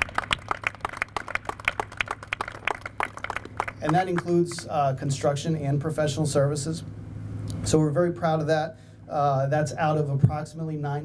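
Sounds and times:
sparse hand claps: 0.0s - 4.6s
steady low hum: 0.0s - 11.0s.

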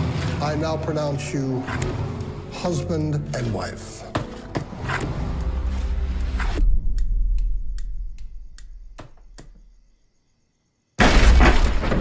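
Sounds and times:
steady ticking: 5.1s - 9.6s.

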